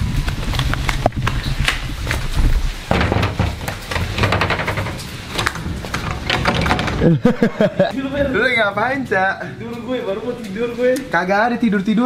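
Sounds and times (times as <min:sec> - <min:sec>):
knocking on glass door: 0:02.9 - 0:05.0.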